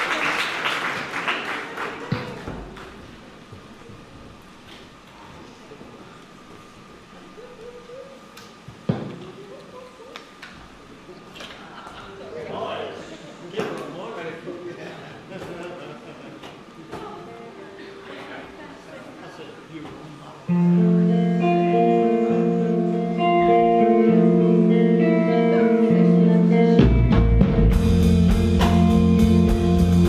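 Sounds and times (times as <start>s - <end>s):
stage noise: 0.0s - 14.5s, 15.2s - 30.0s.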